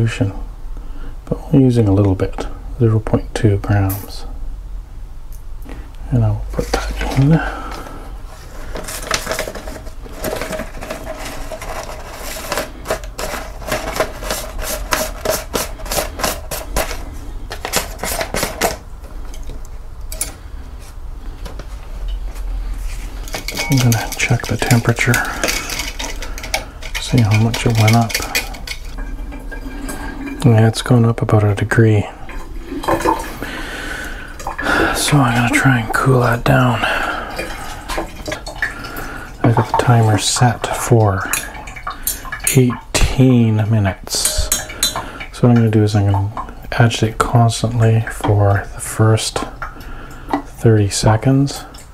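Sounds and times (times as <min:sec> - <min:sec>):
water running and dripping: 0:22.1 - 0:51.9
metal spatula tapping: 0:44.2 - 0:45.0.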